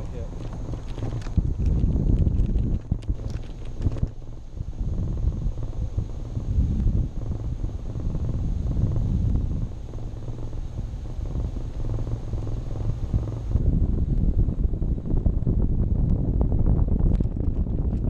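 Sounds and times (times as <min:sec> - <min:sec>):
crackly wind gusts: 0:00.0 - 0:18.0
wind buffeting microphone: 0:00.0 - 0:18.0.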